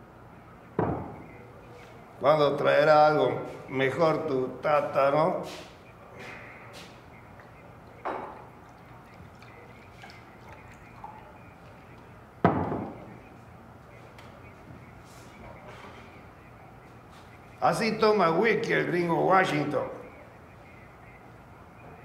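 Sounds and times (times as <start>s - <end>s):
bottle knocking on wooden table: 0.8s - 1.2s, 8.0s - 8.4s, 12.4s - 13.0s
liquor pouring into a glass: 8.2s - 12.1s.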